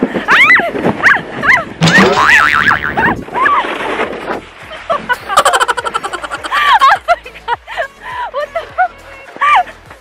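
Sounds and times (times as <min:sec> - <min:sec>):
laughter: 0:04.7 - 0:09.8.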